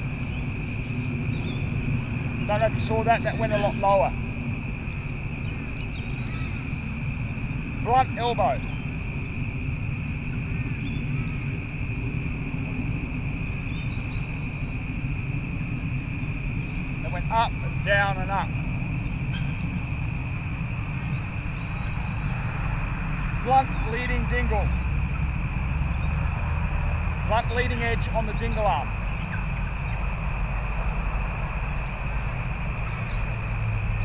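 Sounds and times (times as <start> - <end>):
thin high-pitched drone: 0.0 - 26.3
high-pitched whine: 0.0 - 34.0
low rumble: 0.0 - 34.0
wind buffeting microphone: 0.0 - 34.0
faint clicks: 4.9 - 6.0, 11.1 - 11.5, 31.7 - 32.0.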